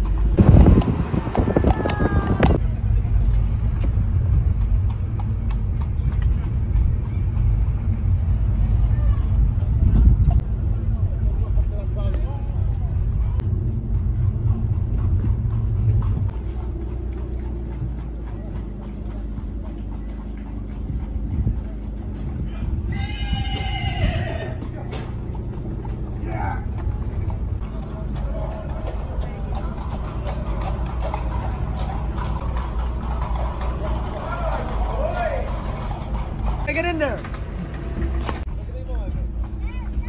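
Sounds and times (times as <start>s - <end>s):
car interior rumble: 0.0s - 40.0s
horses' hooves clip-clop: 0.0s - 40.0s
horse whinnying: 22.6s - 24.8s.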